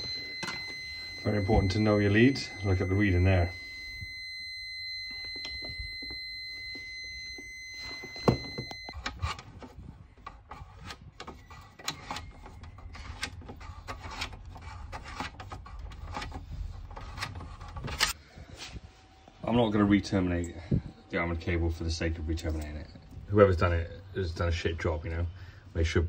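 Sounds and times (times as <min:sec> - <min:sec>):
tester buzzer high beep: 0:00.0 - 0:09.0.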